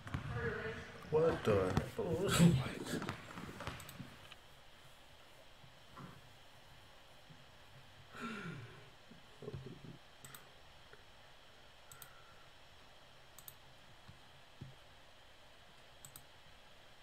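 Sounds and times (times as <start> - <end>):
computer mouse clicking: 3.7 - 4.4, 9.5 - 11.0, 11.9 - 12.2, 13.4 - 14.8, 15.8 - 16.3.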